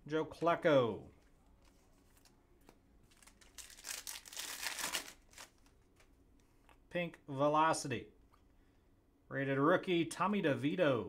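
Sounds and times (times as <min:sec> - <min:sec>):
foil wrapper crinkling: 0:03.0 - 0:06.1.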